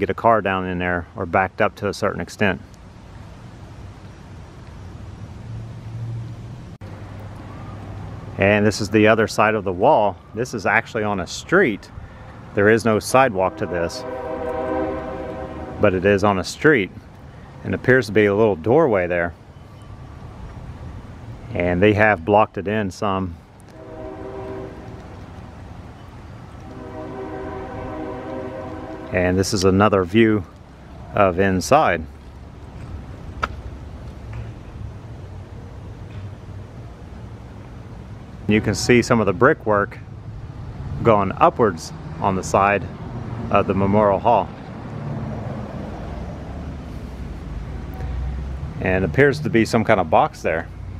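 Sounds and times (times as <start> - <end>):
road traffic hum: 0.0 - 50.9
train horn chords: 13.0 - 16.3, 23.7 - 25.6, 26.5 - 29.9
low rumble: 13.1 - 16.2, 23.7 - 29.7.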